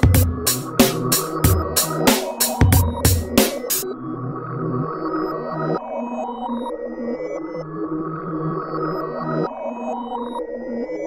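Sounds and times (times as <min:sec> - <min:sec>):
trap instrumental beat: 0:00.0 - 0:03.8.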